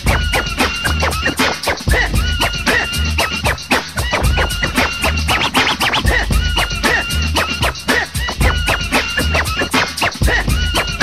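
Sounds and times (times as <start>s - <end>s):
hip hop beat with heavy bass: 0.0s - 11.0s
turntable scratching: 0.0s - 11.0s.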